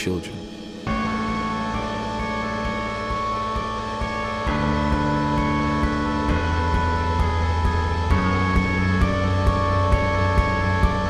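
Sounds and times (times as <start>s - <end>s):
low bass notes: 0.0s - 11.0s.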